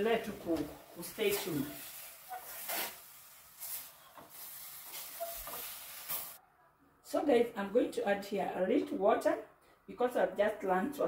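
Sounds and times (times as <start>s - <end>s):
chicken hissing in a steel pot: 1.2s - 6.4s.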